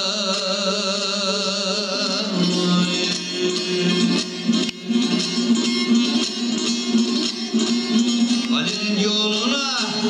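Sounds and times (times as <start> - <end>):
plucked long-necked lute: 0.0 - 10.0.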